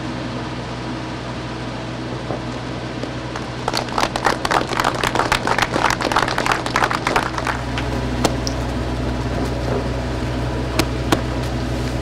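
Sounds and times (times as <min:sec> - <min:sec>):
steady low hum: 0:00.0 - 0:12.0
crowd clapping: 0:03.4 - 0:08.6.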